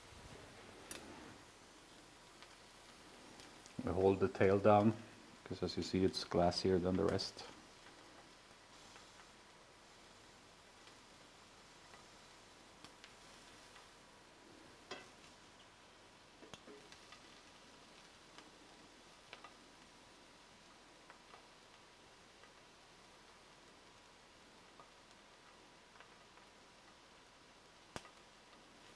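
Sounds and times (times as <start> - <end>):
faint hiss: 0.0 - 28.9
metal tongs clicking on pan: 14.9 - 15.7.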